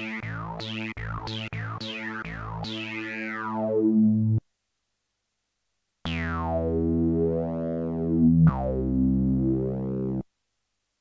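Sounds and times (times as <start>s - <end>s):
synthesizer low held tones: 0.0s - 4.4s, 6.1s - 10.2s.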